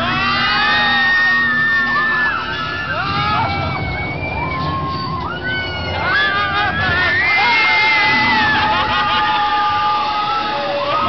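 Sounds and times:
riders screaming: 0:00.0 - 0:11.0.

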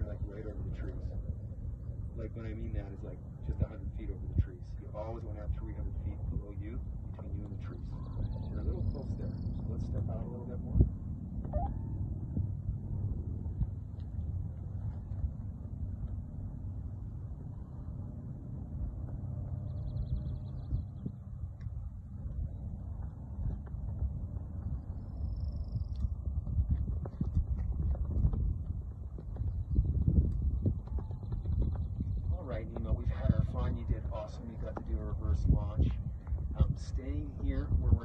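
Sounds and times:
wind buffeting microphone: 0:00.0 - 0:38.0.

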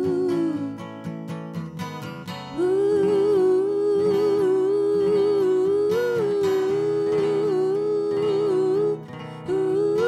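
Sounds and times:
two voices singing wordless harmony: 0:00.0 - 0:00.9, 0:02.5 - 0:10.0
acoustic guitar: 0:00.0 - 0:10.0.

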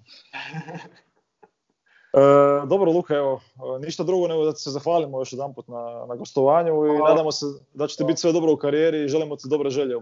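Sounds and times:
man chuckling: 0:00.4 - 0:00.9.

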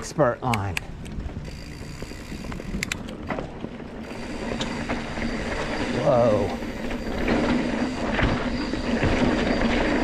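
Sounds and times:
bike clicks and knocks: 0:00.4 - 0:10.0
bike tyres rumbling on dirt: 0:01.2 - 0:10.0.

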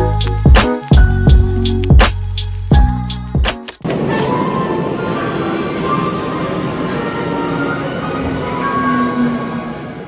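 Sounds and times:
background music with held notes: 0:00.0 - 0:09.4
subway train doors closing: 0:03.8 - 0:10.0.

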